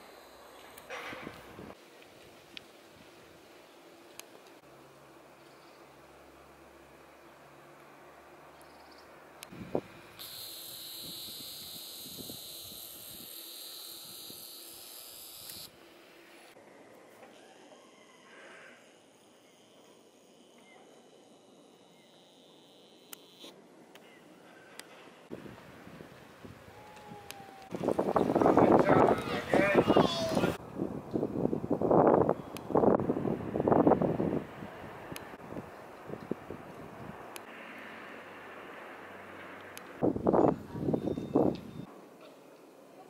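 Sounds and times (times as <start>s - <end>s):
high insect chirring: 0.0s - 0.9s, 9.7s - 15.8s, 18.8s - 23.5s.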